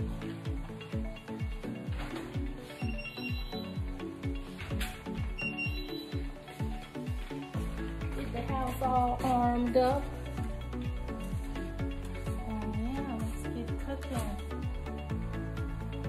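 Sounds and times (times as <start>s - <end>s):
background music with held tones: 0.0s - 16.0s
voice: 8.2s - 10.1s, 12.5s - 14.4s.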